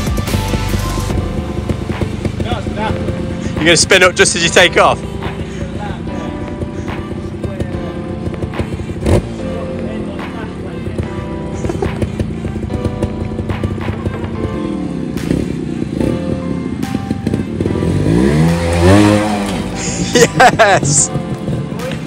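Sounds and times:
background music: 0:00.0 - 0:22.0
motorbike engine revving: 0:00.0 - 0:22.0.

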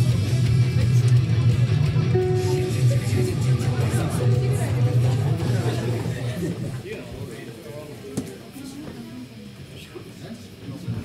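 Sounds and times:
low sustained band note: 0:02.0 - 0:04.5
people talking: 0:02.1 - 0:11.0.

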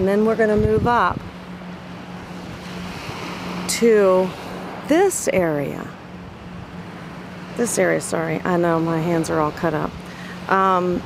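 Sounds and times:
gentle surf: 0:00.0 - 0:11.0
wind: 0:00.0 - 0:11.0.

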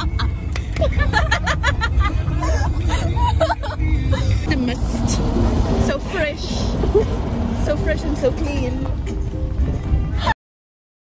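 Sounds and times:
bus engine rumble from inside: 0:00.0 - 0:10.4.

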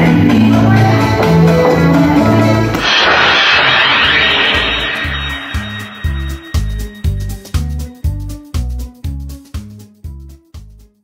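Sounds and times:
music: 0:00.0 - 0:11.0
whoosh sound effect: 0:02.8 - 0:07.4.

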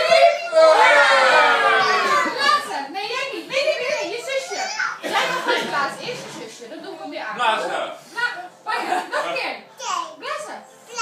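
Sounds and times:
children and adults talking: 0:00.0 - 0:11.0.

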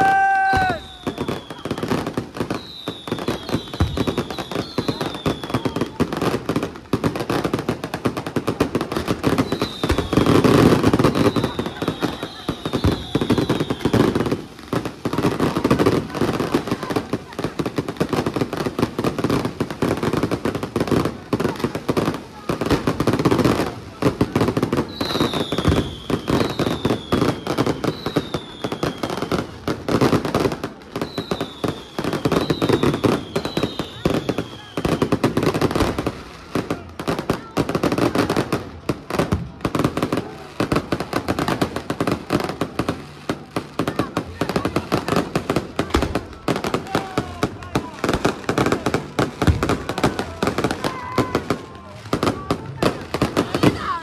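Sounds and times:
crowd voices: 0:00.0 - 0:54.0
fireworks crackling: 0:00.0 - 0:54.0.

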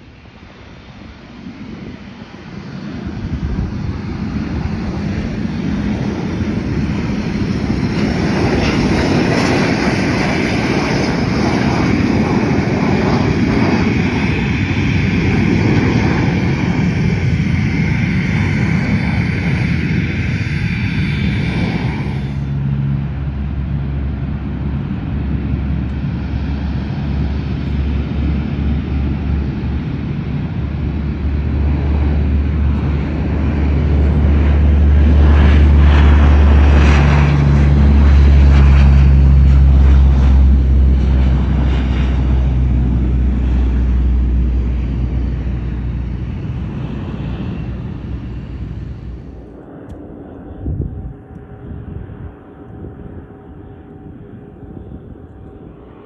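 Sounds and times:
jet engine high whine: 0:00.0 - 0:56.0
jet engines roaring: 0:00.0 - 0:56.0.

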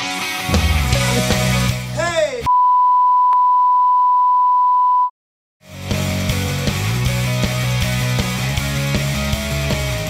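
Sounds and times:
rock music with guitar: 0:00.0 - 0:02.5, 0:05.6 - 0:10.0.

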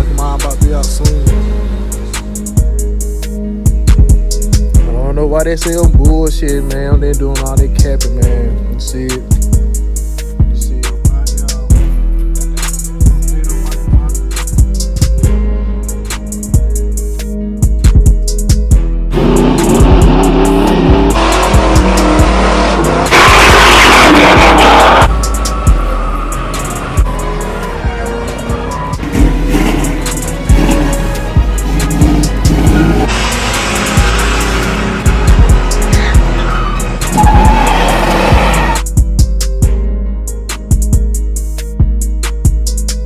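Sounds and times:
music with a steady beat: 0:00.0 - 0:43.0
car tires squealing: 0:19.2 - 0:27.0, 0:30.6 - 0:38.8.

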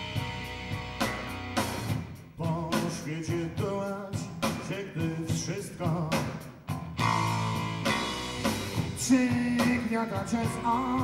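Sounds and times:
live rock band: 0:00.0 - 0:11.0
drum hits: 0:01.0 - 0:10.8
person singing: 0:02.4 - 0:06.4, 0:09.0 - 0:11.0.

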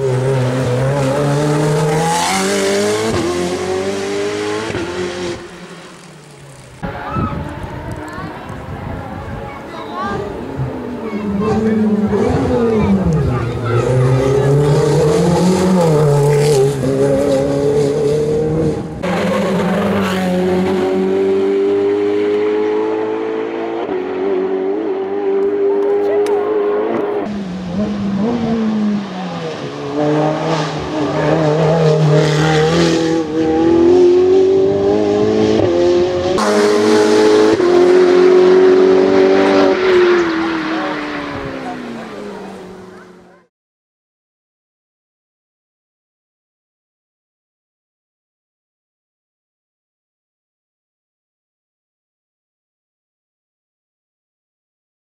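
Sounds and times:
race car engine accelerating: 0:00.0 - 0:09.2, 0:10.0 - 0:43.4.

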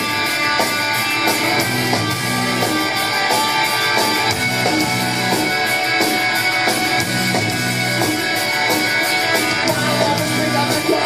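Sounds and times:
distorted electric guitar: 0:00.0 - 0:11.0
driving drum beat: 0:00.0 - 0:11.0.

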